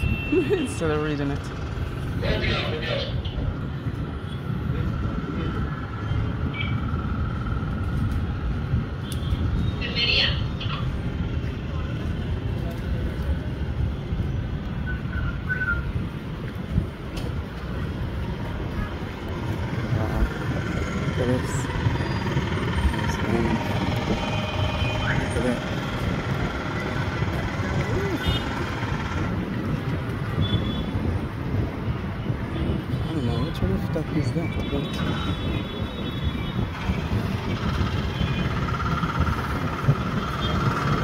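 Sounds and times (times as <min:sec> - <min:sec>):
distant traffic rumble: 0:00.0 - 0:41.0
wind: 0:00.0 - 0:41.0.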